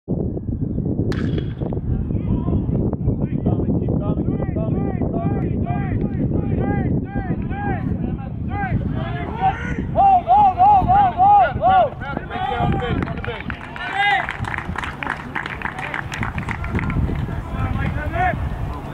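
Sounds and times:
wind rumble on microphone: 0.1s - 18.9s
metal bat hitting ball: 1.1s - 1.8s
people talking and calling: 1.6s - 18.9s.

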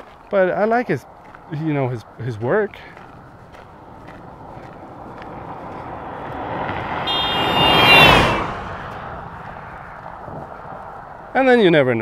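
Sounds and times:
vehicle passing on road: 0.0s - 12.0s.

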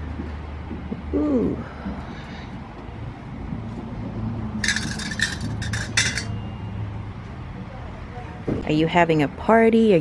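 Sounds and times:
low store hum: 0.0s - 8.0s
metal utensils clinking: 4.6s - 6.4s.

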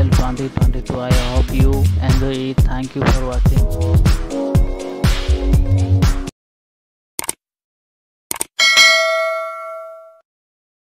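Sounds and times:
notification bell ding: 8.6s - 10.2s.

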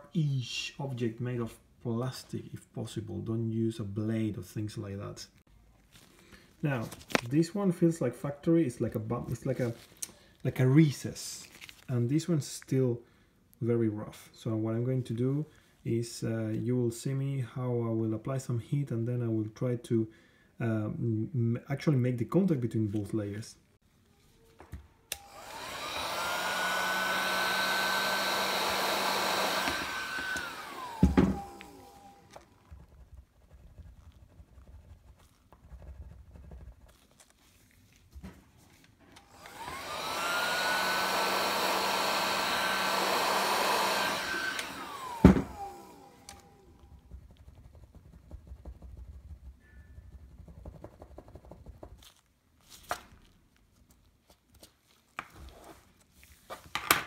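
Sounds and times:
heat gun motor whine: 25.1s - 32.6s, 39.2s - 46.8s.

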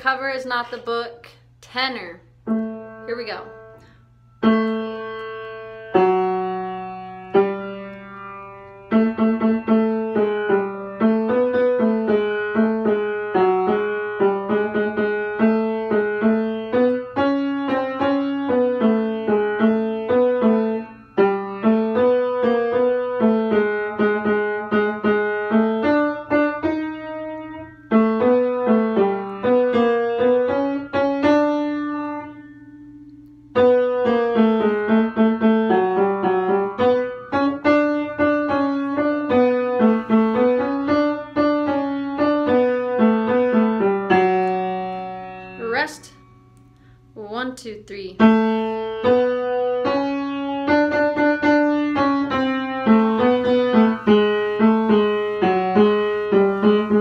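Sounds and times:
piano playing repeated chords: 2.3s - 47.4s, 48.1s - 57.0s.

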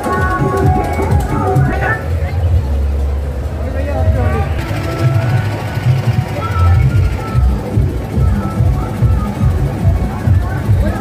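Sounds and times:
crowd voices: 0.0s - 11.0s
tractor engine rumbling: 0.0s - 11.0s.

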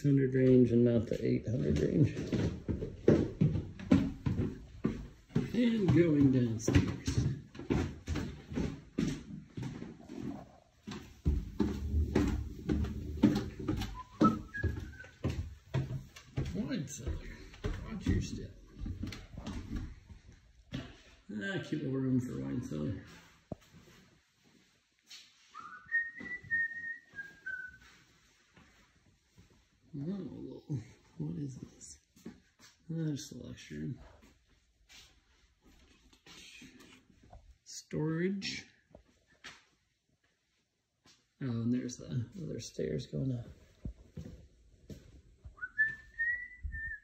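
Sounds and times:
footsteps on hard floor: 0.4s - 21.3s, 22.9s - 29.8s, 34.1s - 37.6s, 43.4s - 46.9s
person whistling: 13.8s - 15.2s, 25.6s - 27.8s, 45.6s - 47.0s.

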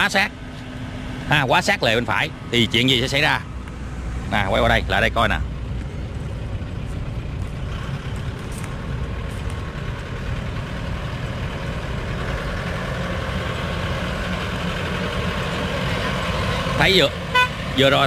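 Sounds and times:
truck engine driving by: 0.0s - 18.0s.

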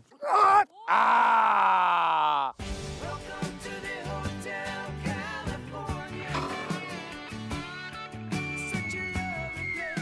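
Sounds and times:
groan-like voice falling in pitch: 0.2s - 2.6s
background music with a beat: 2.6s - 10.0s.

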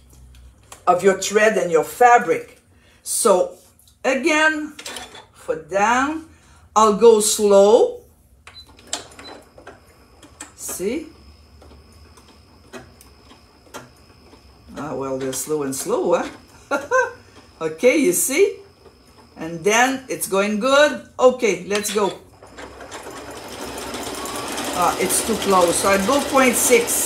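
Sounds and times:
sewing machine running: 8.8s - 20.6s, 21.6s - 27.0s.

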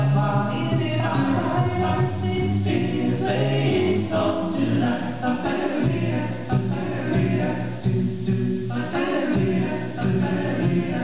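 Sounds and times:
vocal ensemble singing in harmony: 0.0s - 11.0s.

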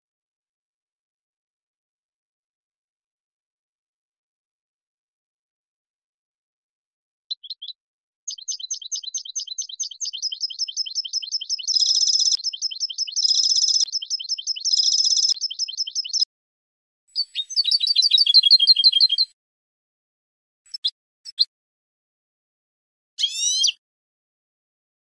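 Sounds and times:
goldfinch twittering song: 7.3s - 16.3s, 17.1s - 19.4s, 23.2s - 23.8s.

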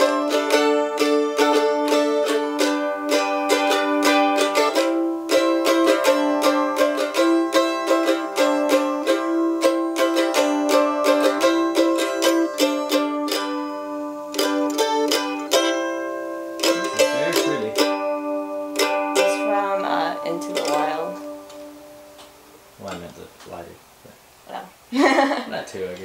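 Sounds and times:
mandolin picked notes: 0.0s - 23.7s.

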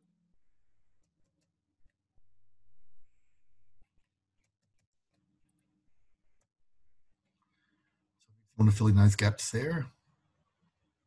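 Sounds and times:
computer keys typing: 3.8s - 5.6s.

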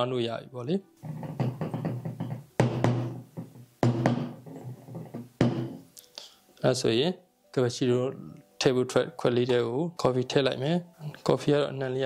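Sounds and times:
background music: 0.0s - 12.0s
man talking: 6.6s - 12.0s.

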